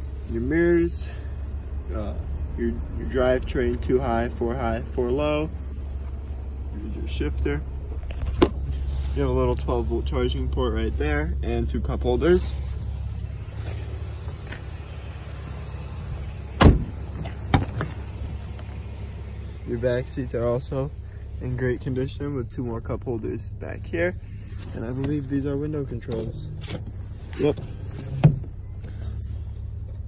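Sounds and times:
car engine idling: 0.0 - 30.0
car door thump: 16.6 - 18.0, 28.1 - 28.6.

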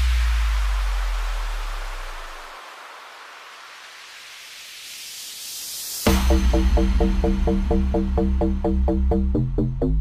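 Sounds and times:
white noise riser: 0.0 - 9.1.

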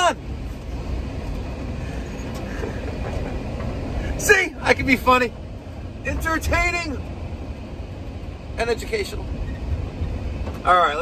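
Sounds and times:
engine and road noise inside van: 0.0 - 11.0.

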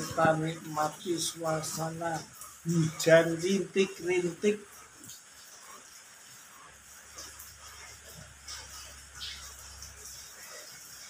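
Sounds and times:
light drizzle pattering: 0.0 - 11.0
small drips: 0.0 - 11.0.

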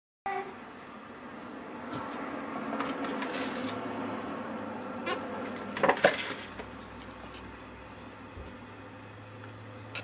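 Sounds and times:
steady background hum: 0.3 - 10.0.

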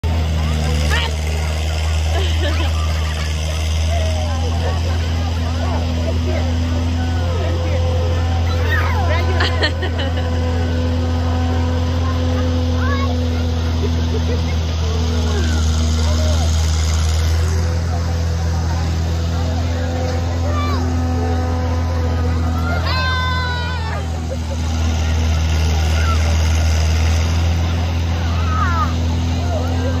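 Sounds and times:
children chattering and calling: 0.0 - 30.0
low motor hum: 0.0 - 30.0.

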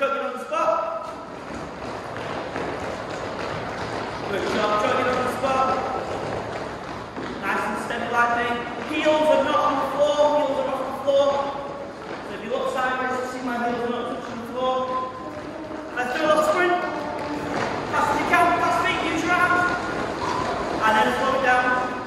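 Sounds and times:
man talking: 0.0 - 1.1, 4.3 - 6.0, 7.4 - 15.3, 15.9 - 17.2, 17.9 - 19.9, 20.7 - 22.0.

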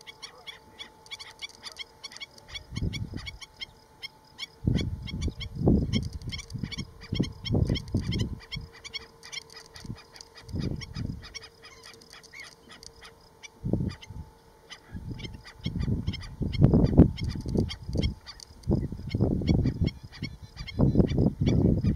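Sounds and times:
birds yipping calls: 0.0 - 21.9
wind rumbling on microphone: 2.5 - 3.4, 4.6 - 12.2, 13.6 - 14.3, 14.9 - 21.9.

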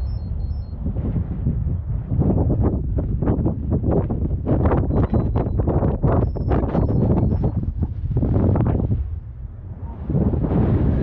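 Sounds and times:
thin whistling tones: 0.0 - 0.8, 4.8 - 7.7.

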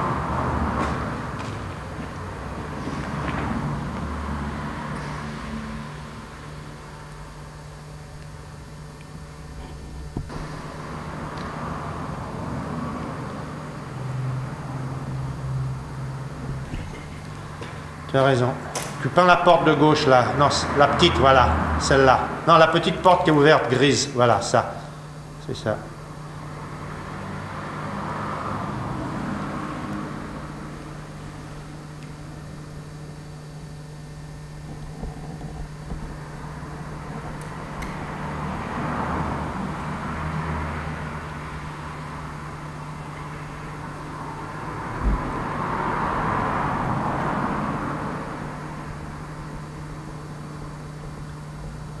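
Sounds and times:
steady low hum: 0.0 - 52.0
short low thump: 9.6 - 10.6.

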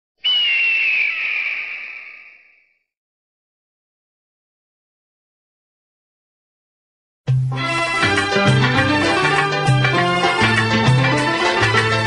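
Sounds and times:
bird of prey screaming call: 0.2 - 2.8.

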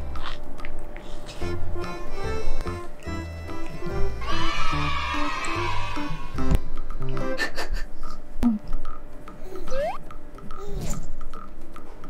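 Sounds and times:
light plucked background music: 0.0 - 12.0.

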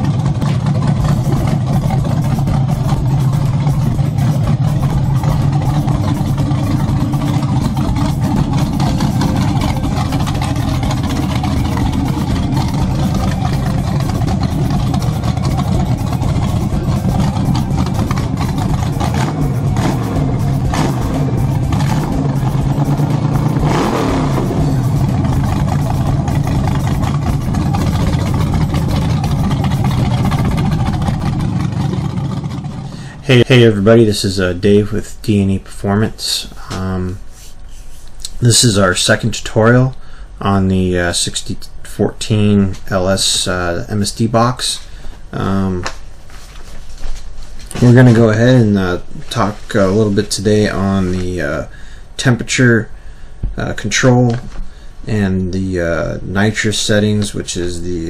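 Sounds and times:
engine idling and revving: 0.0 - 35.1.

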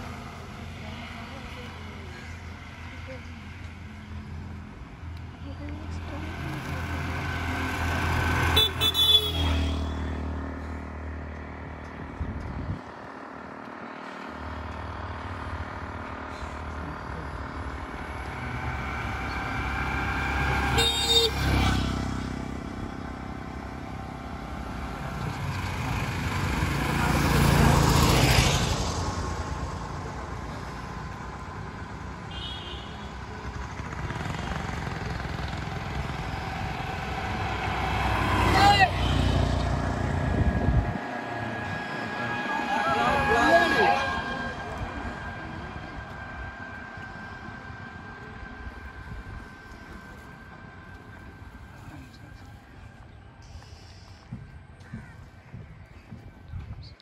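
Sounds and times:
motorcycles passing: 0.0 - 56.5
vehicle horn toots: 8.4 - 10.3, 20.5 - 21.8, 32.3 - 33.2.

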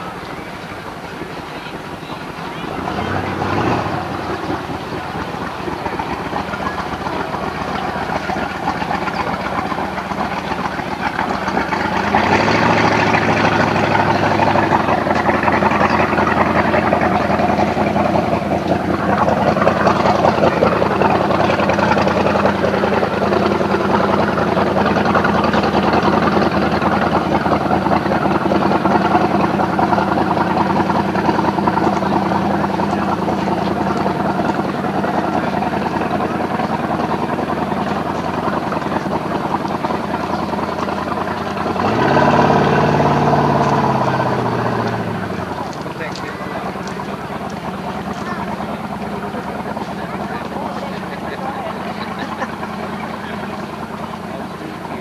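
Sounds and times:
motorboat engine running: 0.0 - 55.0.

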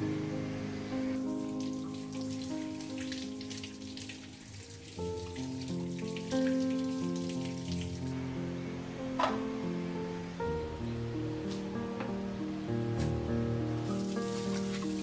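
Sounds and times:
instrumental music: 0.0 - 15.0.

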